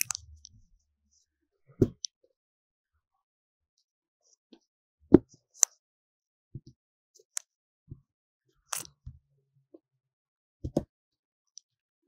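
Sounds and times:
sharp click: 8.7s - 8.9s.

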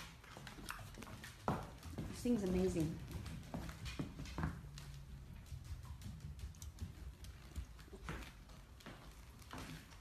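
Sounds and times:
puppy claws tapping on hard floor: 0.0s - 10.0s.

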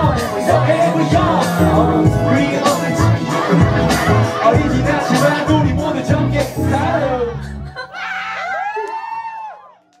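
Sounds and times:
audience screaming and cheering: 0.0s - 5.6s, 6.7s - 10.0s.

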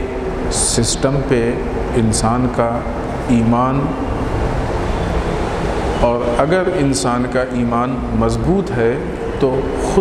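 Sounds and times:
person speaking: 0.0s - 4.1s
steady rushing noise: 0.0s - 10.0s.

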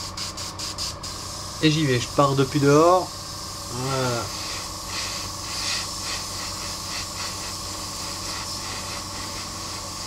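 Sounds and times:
airbrush spraying hiss: 0.0s - 10.0s.

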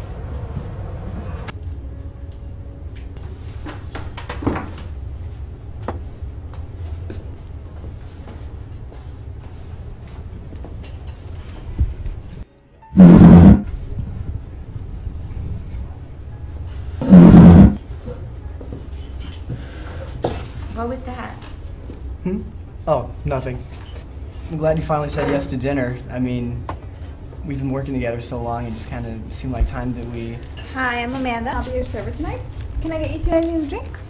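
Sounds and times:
loud roar-like bursts: 13.0s - 13.7s, 17.0s - 17.8s.

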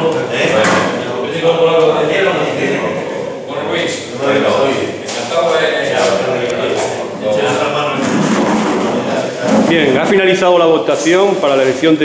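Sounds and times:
men chattering: 0.0s - 12.0s.

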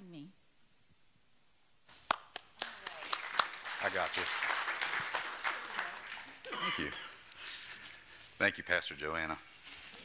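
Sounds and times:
congregation applauding: 1.9s - 7.2s.

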